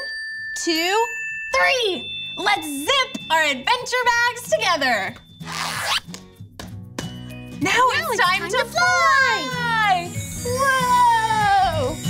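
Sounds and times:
light background music: 2.1s - 12.0s
zipper drawn shut: 5.4s - 6.1s.

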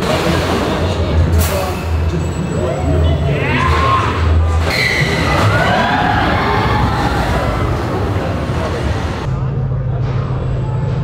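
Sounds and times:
faint music: 0.0s - 11.0s
indistinct voices: 0.0s - 11.0s.

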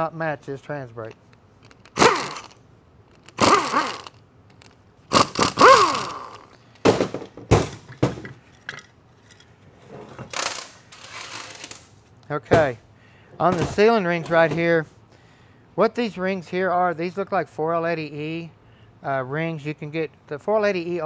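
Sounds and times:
power tool whirring: 1.6s - 6.6s
metal parts clinking on bench: 8.2s - 11.9s.

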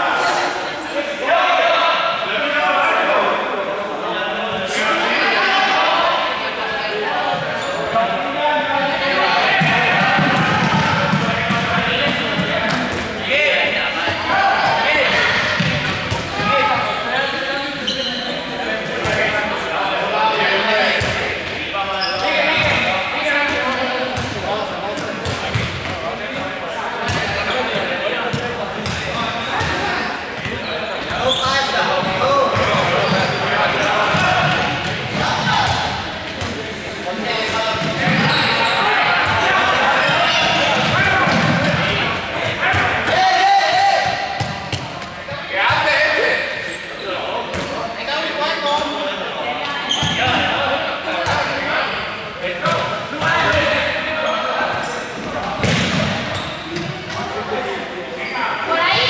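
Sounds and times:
players talking and calling out: 0.0s - 59.0s
balls bouncing on hard floor: 9.6s - 13.1s, 44.0s - 45.1s, 55.5s - 57.2s.

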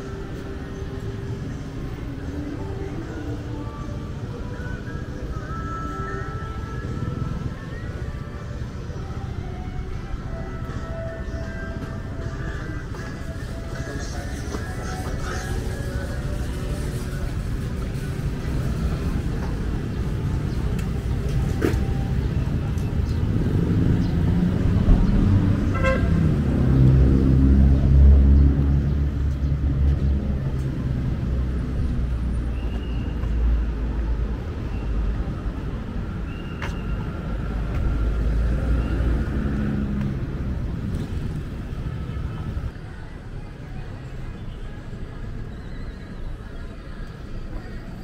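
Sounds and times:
steady road noise: 0.0s - 48.0s
vehicle engine passing: 23.2s - 31.8s.

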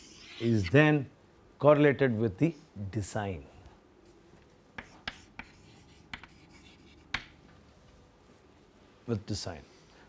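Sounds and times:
chalk on blackboard: 0.0s - 0.8s, 4.8s - 7.4s.

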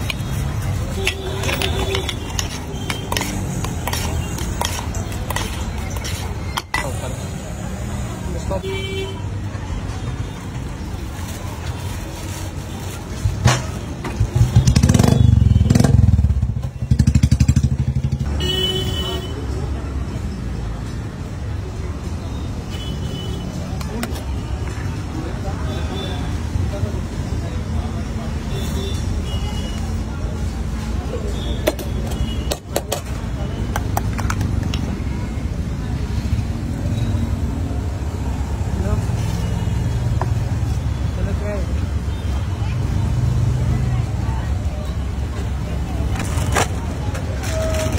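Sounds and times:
traffic rumble: 0.0s - 47.9s.

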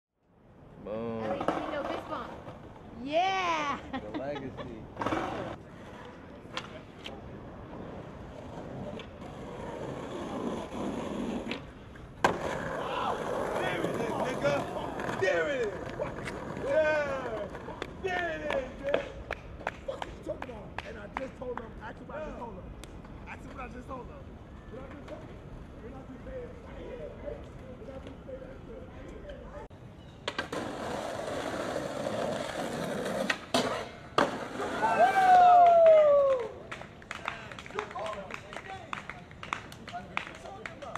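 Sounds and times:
skateboard wheels rolling: 1.1s - 3.7s, 4.8s - 19.8s, 23.0s - 37.0s
skateboard clacks: 1.2s - 2.6s, 8.7s - 21.8s
skateboard clack: 1.2s - 2.8s, 4.9s - 7.2s, 7.8s - 23.6s, 30.2s - 40.9s.

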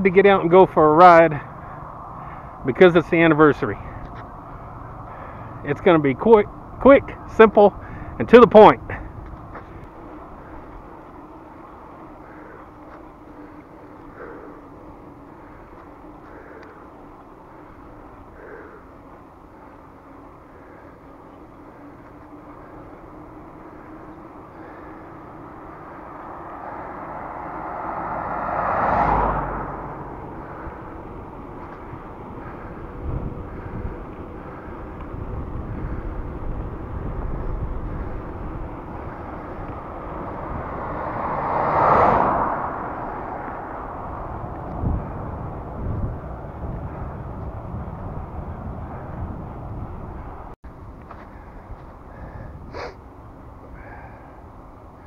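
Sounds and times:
vehicles passing: 0.0s - 55.0s
wind buffeting microphone: 1.4s - 55.0s.

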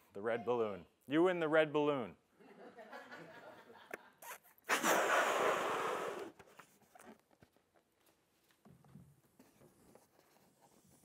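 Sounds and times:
man blowing into a balloon: 4.2s - 6.6s.

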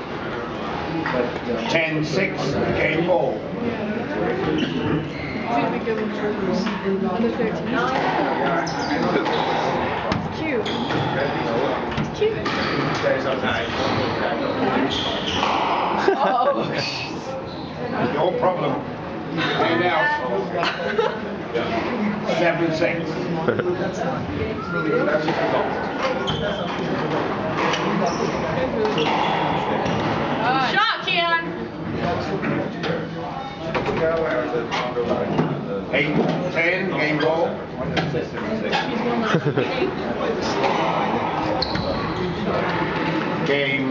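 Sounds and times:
spectators' voices: 0.0s - 43.9s.

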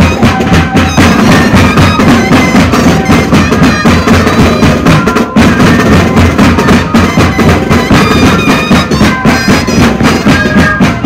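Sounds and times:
bass drums and snare drums: 0.0s - 11.0s
reedy buzzing flutes: 0.0s - 11.0s.

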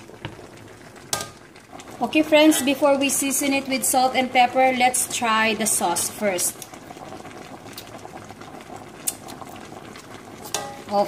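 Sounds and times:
sauce bubbling in a wok: 0.0s - 11.0s.

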